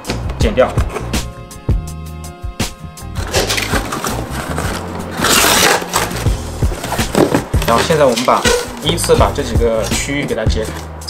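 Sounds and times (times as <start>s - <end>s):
background music: 0.0s - 11.0s
utility knife slicing tape: 3.2s - 7.2s
cardboard flaps scraping open: 3.2s - 8.9s.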